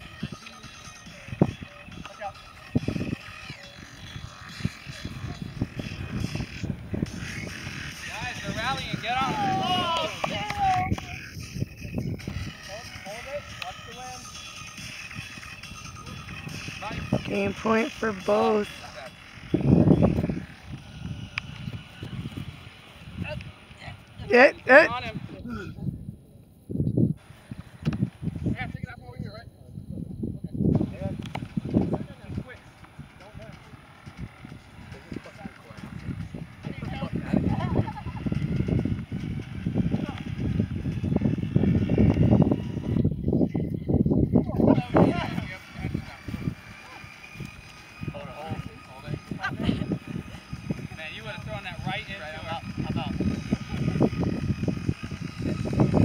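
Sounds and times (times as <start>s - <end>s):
wind buffeting microphone: 0.0s - 56.0s
indistinct voices calling out: 3.2s - 11.5s, 16.3s - 20.7s.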